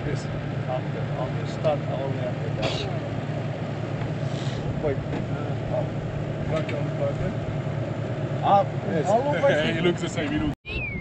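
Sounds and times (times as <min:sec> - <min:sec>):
vehicle engine idling: 0:00.0 - 0:10.6.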